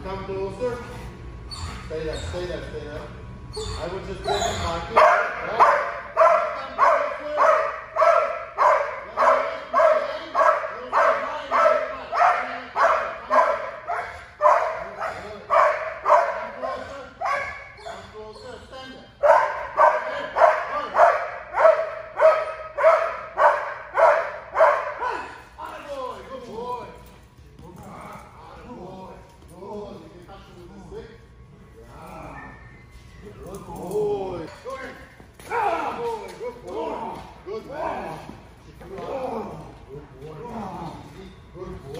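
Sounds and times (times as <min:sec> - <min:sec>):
dog whining: 0:01.4 - 0:02.4, 0:03.5 - 0:04.9, 0:17.2 - 0:18.7
dog barking: 0:05.0 - 0:18.1, 0:19.2 - 0:25.3.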